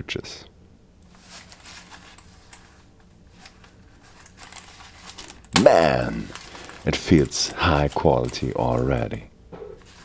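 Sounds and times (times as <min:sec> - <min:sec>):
fabric pouch rustling: 0:01.1 - 0:09.0.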